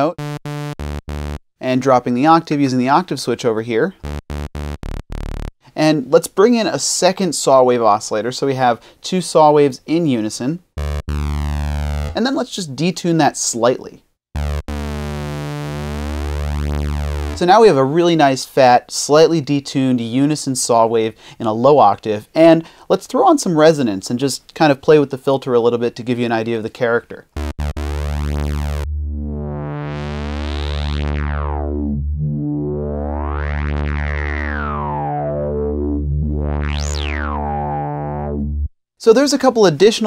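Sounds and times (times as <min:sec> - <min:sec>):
buzzy synthesizer low note: 0:00.0 - 0:01.4, 0:04.0 - 0:05.6, 0:10.8 - 0:12.2, 0:14.3 - 0:18.0, 0:27.3 - 0:38.7.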